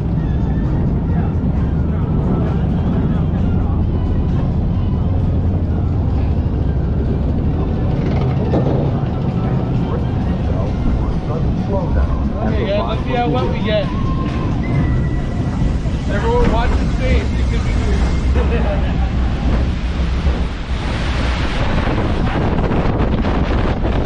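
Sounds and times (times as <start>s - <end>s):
boat riding along track rumble: 0.0s - 24.0s.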